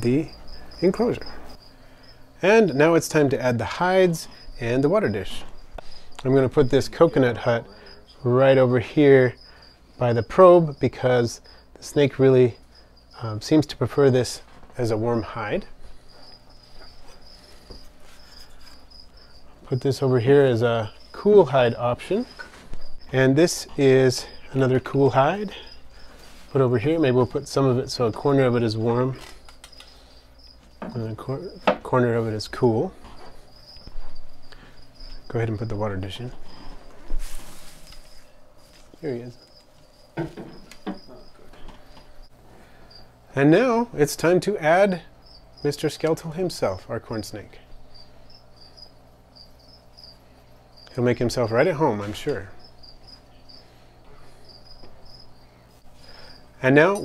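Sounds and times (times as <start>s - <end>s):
cricket chirping: 0.0s - 37.0s, 37.6s - 43.2s, 44.7s - 57.0s.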